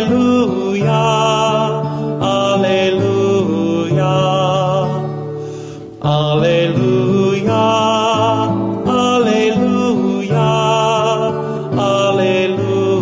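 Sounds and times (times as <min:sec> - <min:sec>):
man singing with vibrato: 0:00.0 - 0:13.0
strummed acoustic guitar: 0:00.0 - 0:13.0.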